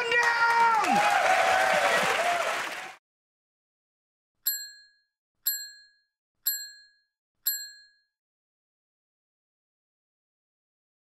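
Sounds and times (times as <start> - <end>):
bell-like ding: 4.5 - 8.2.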